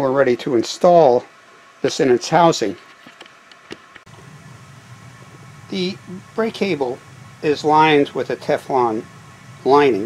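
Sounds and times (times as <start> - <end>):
steady low hum: 3.8 - 10.0.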